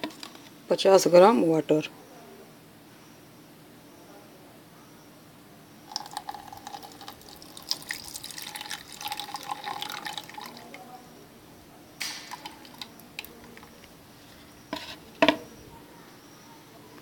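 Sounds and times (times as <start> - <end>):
water trickling into plastic beaker: 5.9 - 11.0, 12.0 - 14.0.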